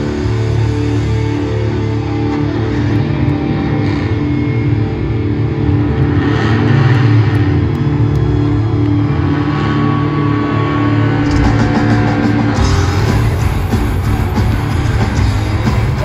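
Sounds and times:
live rock band playing: 0:11.2 - 0:16.0.

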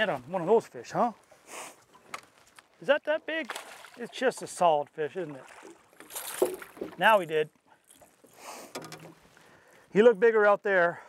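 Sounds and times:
water splashing: 0:03.1 - 0:09.6.

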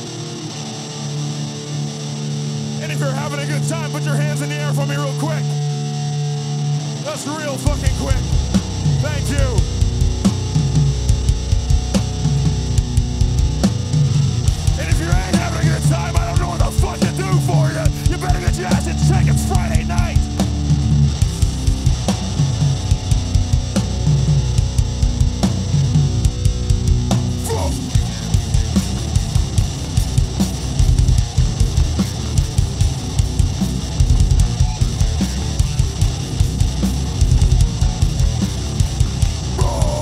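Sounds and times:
bass guitar: 0:00.0 - 0:40.0
distorted electric guitar: 0:00.0 - 0:40.0
fast drumming on drum kit: 0:07.2 - 0:40.0.

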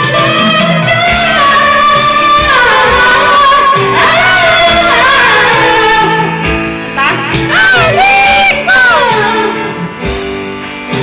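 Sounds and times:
women singing karaoke: 0:00.0 - 0:10.2
karaoke backing track: 0:00.0 - 0:11.0.

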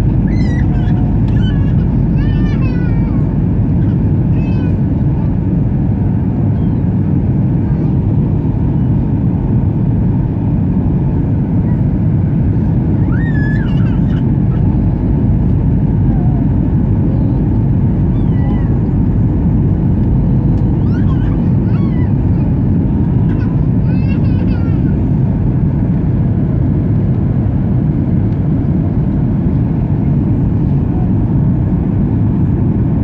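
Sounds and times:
airplane cabin engine rumble: 0:00.0 - 0:33.0
faint high-pitched cries: 0:00.2 - 0:03.2, 0:13.0 - 0:14.7, 0:18.1 - 0:18.8, 0:20.8 - 0:22.5.

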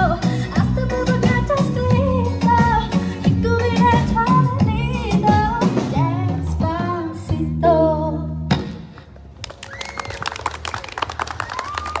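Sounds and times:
people clapping: 0:09.4 - 0:12.0.

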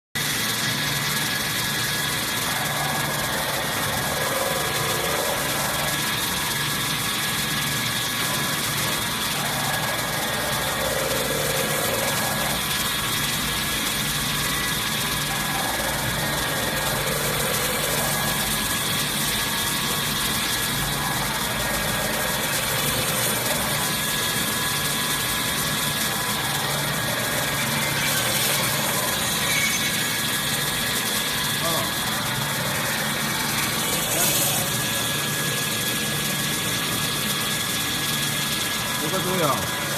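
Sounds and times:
high whining tones: 0:00.2 - 0:39.9
machine humming and whirring: 0:00.2 - 0:39.9.

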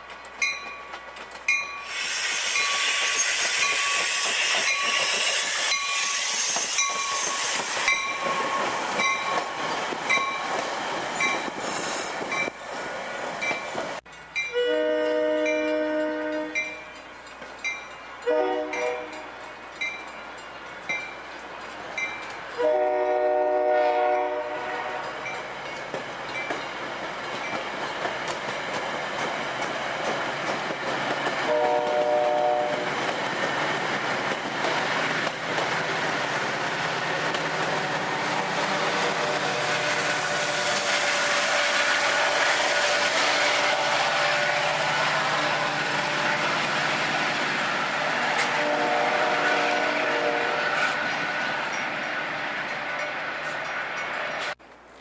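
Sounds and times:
train wheels on rails: 0:00.0 - 0:55.0
train horn blasts: 0:14.5 - 0:17.0, 0:18.2 - 0:19.4, 0:22.6 - 0:25.3, 0:31.5 - 0:32.9, 0:38.6 - 0:46.6, 0:48.2 - 0:51.7.

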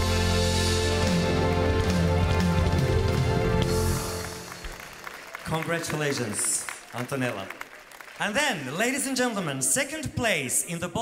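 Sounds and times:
live band playing chords: 0:00.0 - 0:05.0
audience applause: 0:01.2 - 0:09.6.

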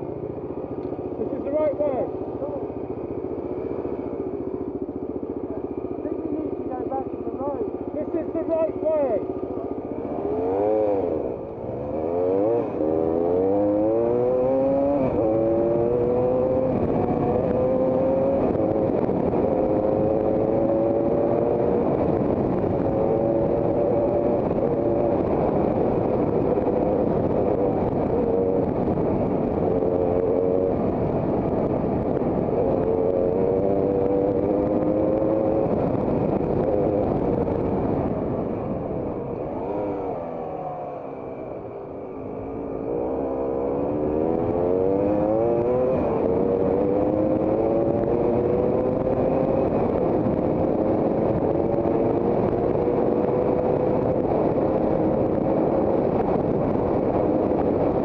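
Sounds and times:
motorcycle engine accelerating: 0:00.0 - 0:58.0.

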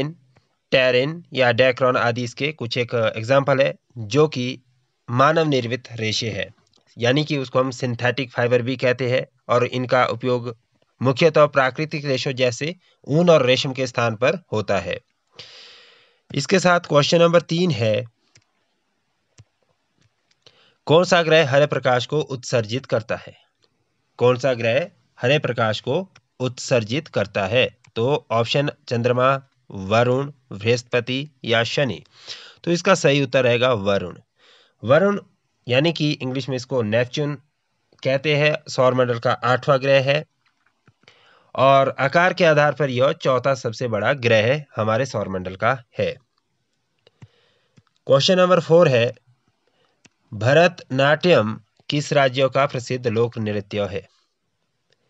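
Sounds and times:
person speaking: 0:00.0 - 0:15.7, 0:16.3 - 0:18.4, 0:20.8 - 0:23.5, 0:24.2 - 0:46.3, 0:48.0 - 0:49.2, 0:50.0 - 0:54.1.

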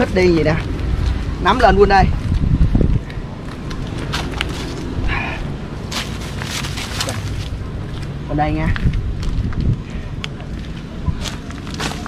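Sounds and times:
low microphone rumble: 0:00.0 - 0:12.0
scuffing footsteps: 0:02.2 - 0:09.8
dry leaves crackling: 0:03.4 - 0:09.5, 0:10.5 - 0:12.0.

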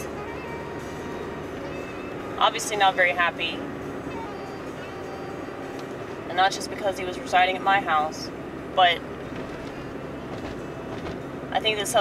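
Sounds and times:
car driving heard from inside: 0:00.0 - 0:12.0.

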